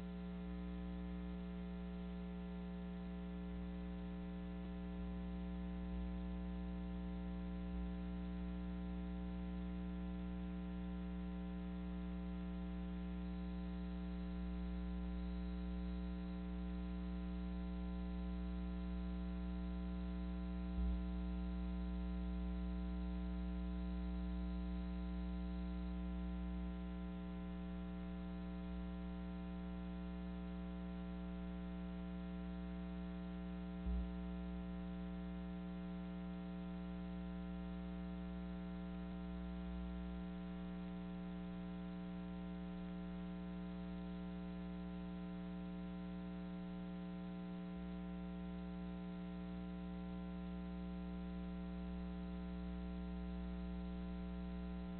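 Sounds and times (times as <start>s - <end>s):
electrical mains hum: 0.0s - 54.9s.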